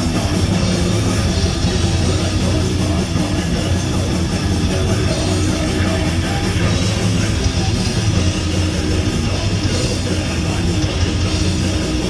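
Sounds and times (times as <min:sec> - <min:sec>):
live metal band playing: 0:00.0 - 0:12.0.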